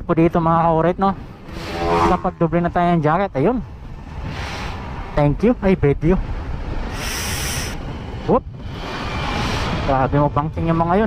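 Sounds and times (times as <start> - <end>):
wind rushing over microphone: 0.0 - 11.0
sharp hiss: 6.9 - 7.8.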